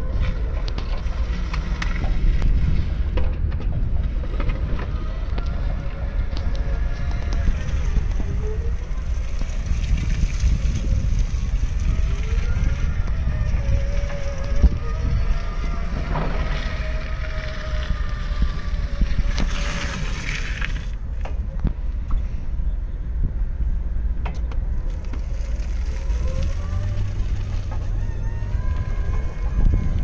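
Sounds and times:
forklift motor whining: 0.0 - 21.6, 24.5 - 30.0
low rumble: 0.0 - 30.0.

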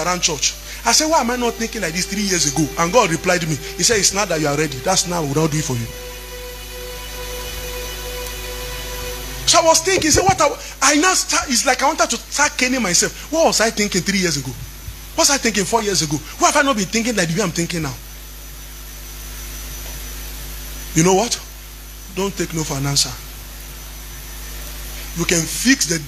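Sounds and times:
low hum: 0.0 - 12.2
soft background music: 0.0 - 13.8
faint steady tones: 0.0 - 14.1
low electrical hum with hiss: 0.0 - 26.0.

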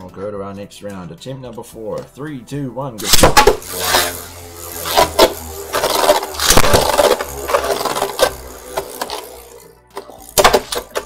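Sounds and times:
spinning tops clashing: 3.0 - 11.0
spinning tops whirring and scraping: 3.0 - 11.0.

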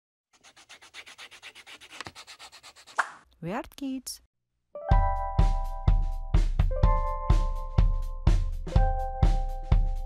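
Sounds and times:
marker scribbling on paper: 0.4 - 3.2.

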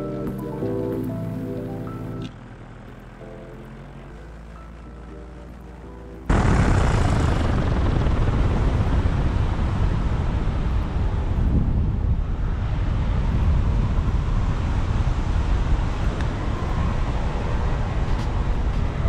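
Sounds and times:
wind rushing on microphone: 6.3 - 19.0.

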